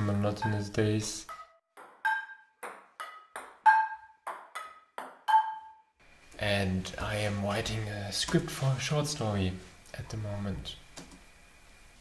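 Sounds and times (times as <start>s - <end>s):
ball bouncing on wooden table: 1.3s - 5.6s
ball hitting frying pan: 1.3s - 5.6s.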